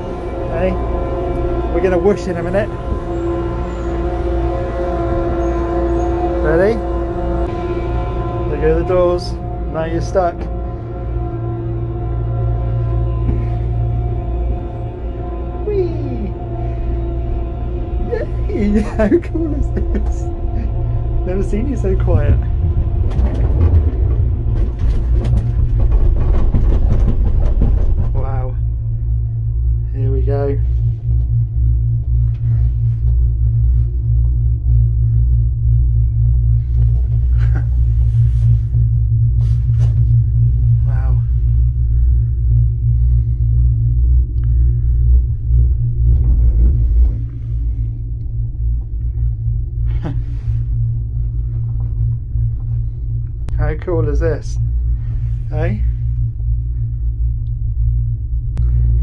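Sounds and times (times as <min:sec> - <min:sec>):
gondola cabin low rumble: 0:00.0 - 0:59.0.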